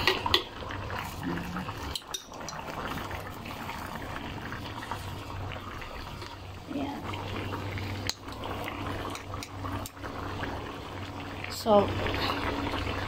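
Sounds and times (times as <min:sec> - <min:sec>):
sauce bubbling in a wok: 0:00.0 - 0:13.0.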